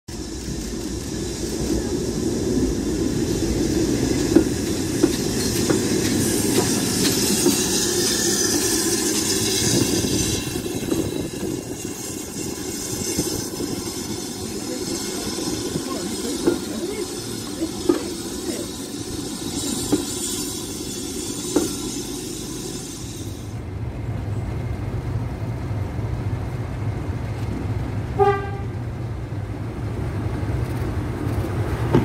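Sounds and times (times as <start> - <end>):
steam locomotive hissing steam: 0.1 - 23.7
wheels clicking over rail joints: 3.9 - 23.2.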